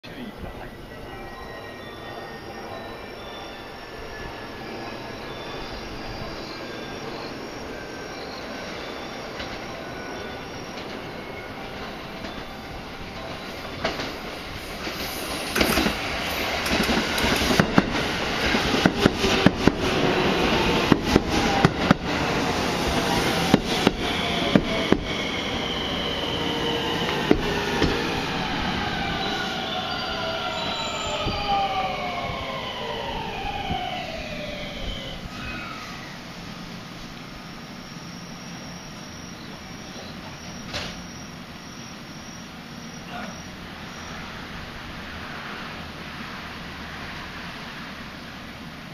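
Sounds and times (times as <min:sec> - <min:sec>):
train wheels clacking over rail joints: 0:16.6 - 0:19.9
traction motor whine falling: 0:22.8 - 0:44.5.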